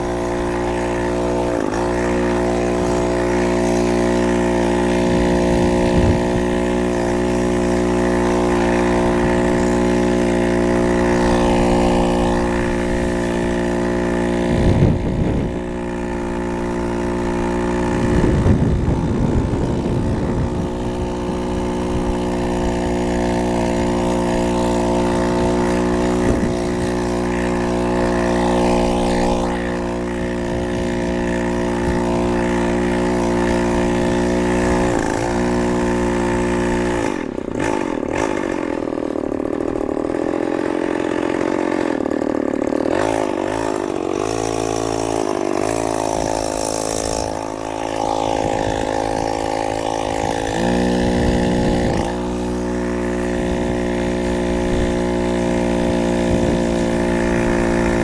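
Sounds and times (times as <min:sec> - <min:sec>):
chainsaw engine running: 0:00.0 - 0:58.0.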